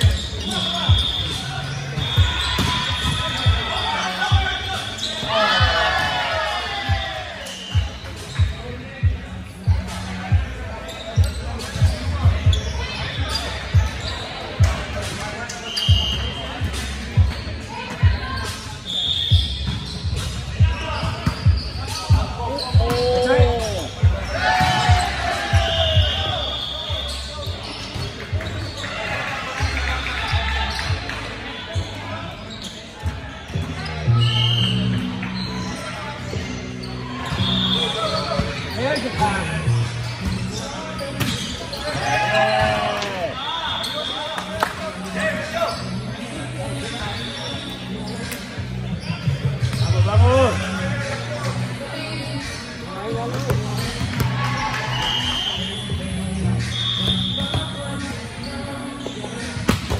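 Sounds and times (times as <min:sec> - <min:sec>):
sneakers squeaking on court: 0:00.0 - 0:06.3, 0:06.9 - 0:50.7, 0:51.3 - 0:59.9
players calling out: 0:00.0 - 0:59.7.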